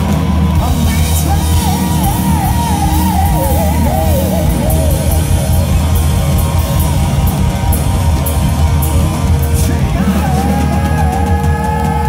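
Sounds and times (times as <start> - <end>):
live hard rock band: 0.0 - 12.0.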